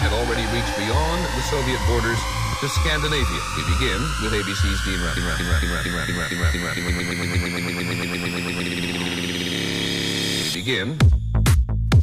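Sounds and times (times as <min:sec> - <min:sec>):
bass drum kick: 0:00.0 - 0:07.8, 0:11.0 - 0:12.0
high rising synth sweep: 0:00.0 - 0:10.6
pulsing synthesizer pattern: 0:00.0 - 0:11.1.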